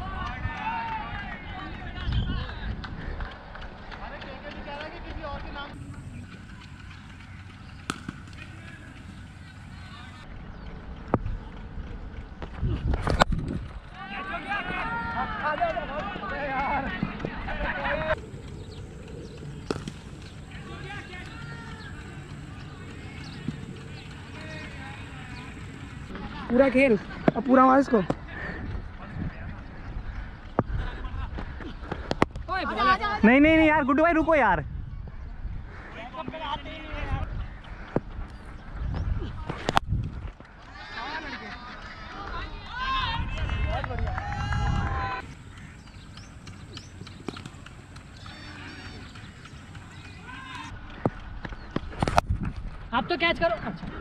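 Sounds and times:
wind rumble on microphone: 0.0 - 27.3, 28.1 - 40.8, 42.2 - 54.0
distant voices: 0.0 - 33.8, 35.1 - 54.0
players calling: 3.4 - 11.0, 13.8 - 34.4, 40.5 - 52.2
cricket bat striking ball: 7.7 - 9.2, 19.5 - 21.2
steady high whine: 17.8 - 26.2.

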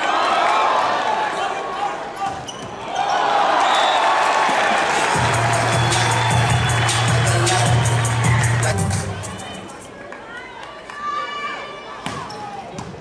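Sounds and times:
crowd shouting: 0.0 - 9.9
arena music with bass: 5.2 - 9.5.

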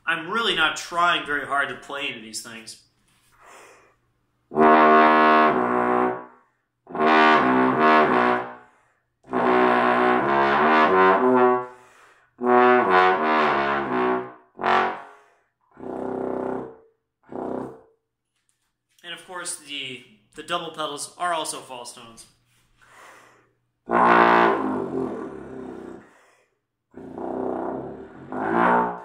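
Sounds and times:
bass trombone playing slurred phrases: 4.5 - 6.2, 6.9 - 8.5, 9.3 - 11.7, 12.4 - 15.0, 23.9 - 26.0, 27.0 - 29.0.

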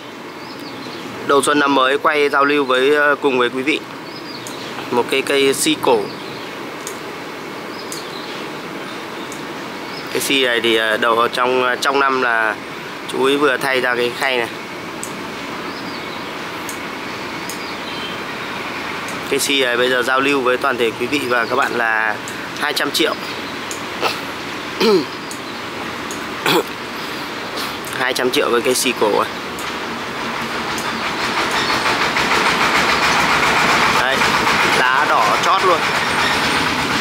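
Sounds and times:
outdoor background hiss: 0.0 - 37.0.

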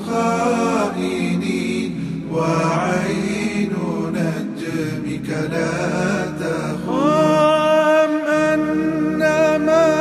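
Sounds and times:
men singing: 0.0 - 10.0.

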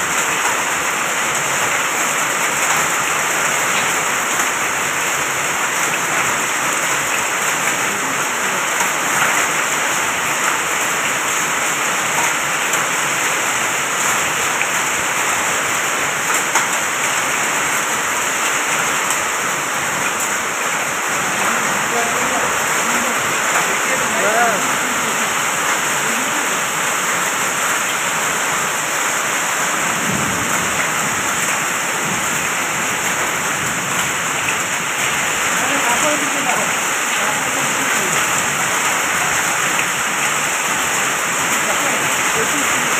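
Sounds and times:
rain and hail on dirt road: 0.0 - 42.9.

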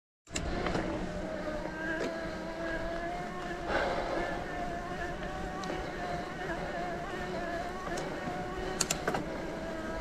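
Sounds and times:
electric bike motor whining: 0.3 - 10.0
wind rumble: 3.6 - 6.4.

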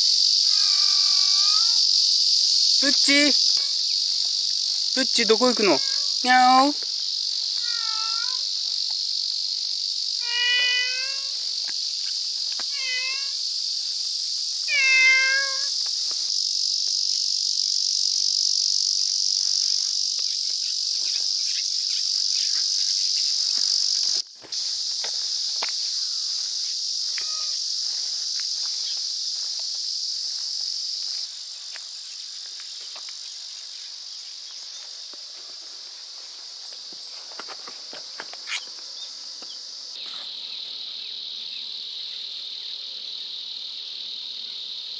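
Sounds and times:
high-pitched insect chorus: 0.0 - 44.9
cat meowing: 7.6 - 8.5, 10.2 - 11.3, 12.7 - 13.4, 14.7 - 15.7.

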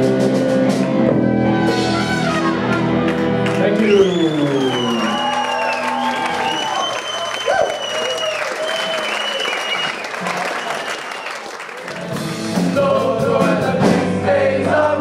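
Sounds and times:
audience applauding and cheering: 1.1 - 13.1
long high whistles: 3.9 - 11.4.

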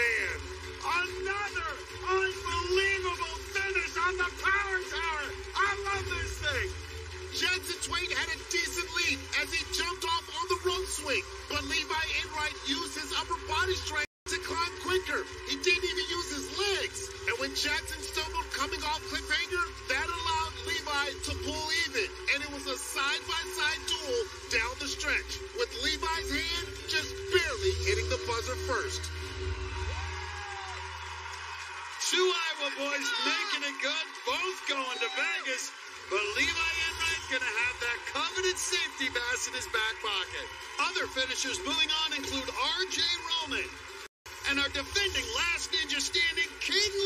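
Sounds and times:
sports commentary: 0.0 - 30.0, 30.6 - 47.0
background music: 0.0 - 47.0.

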